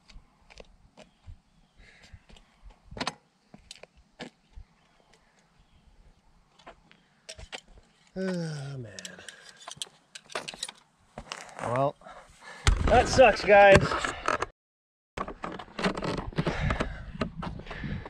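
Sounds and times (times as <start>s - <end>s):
man groaning: 8.2s - 9.2s.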